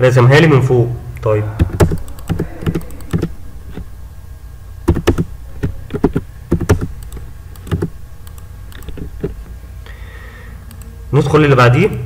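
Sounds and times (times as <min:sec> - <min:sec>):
keyboard keystrokes: 0:01.6 - 0:03.9, 0:04.9 - 0:09.4
mouse clicks: 0:04.9 - 0:09.4.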